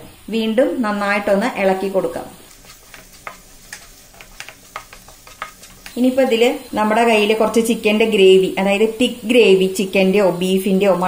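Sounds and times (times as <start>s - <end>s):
light sizzle: 0.0s - 11.0s
wooden spatula scraping a pan: 2.4s - 7.7s.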